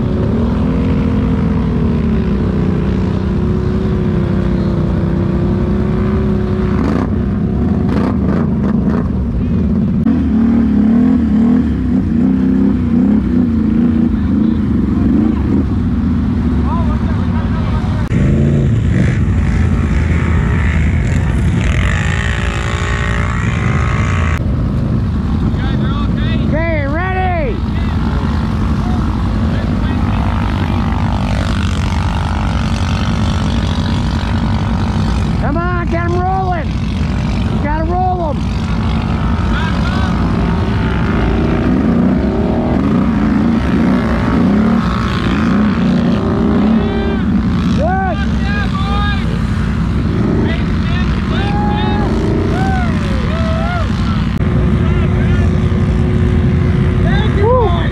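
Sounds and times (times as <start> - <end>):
atv engines running: 0.0 - 57.9.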